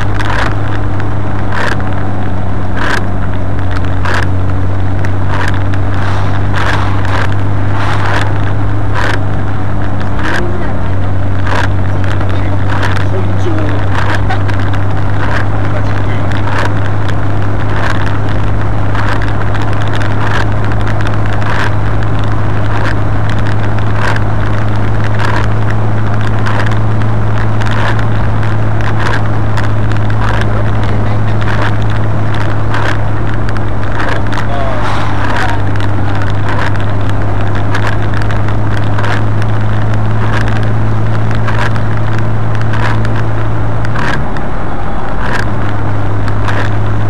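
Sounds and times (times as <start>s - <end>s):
car engine drone: 0.0s - 47.0s
wind rumble on microphone: 0.0s - 47.0s.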